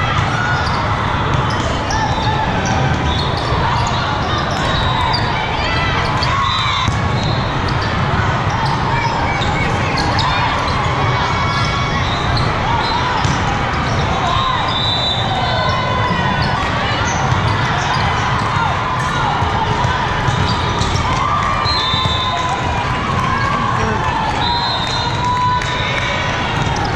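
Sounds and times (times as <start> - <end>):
voices echoing in a hall: 0.0 - 26.9
sneakers squeaking: 0.2 - 19.2, 19.8 - 25.3
volleyballs struck and bouncing: 6.1 - 8.1, 12.4 - 14.2, 15.9 - 24.4.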